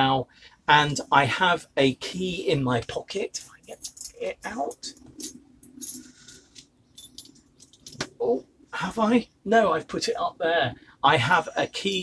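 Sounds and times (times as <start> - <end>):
keys clinking: 3.6 - 8.2.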